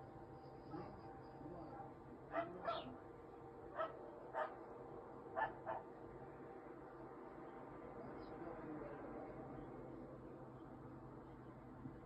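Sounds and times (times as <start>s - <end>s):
dog barking: 2.3s - 2.9s, 3.8s - 4.6s, 5.4s - 5.8s.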